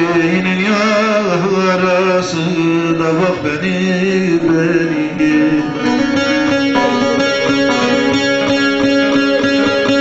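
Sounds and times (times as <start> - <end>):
plucked long-necked lute: 0.0 - 10.0.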